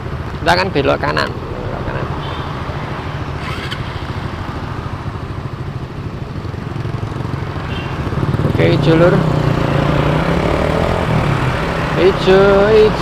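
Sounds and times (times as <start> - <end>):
motorcycle engines idling: 0.0 - 13.0.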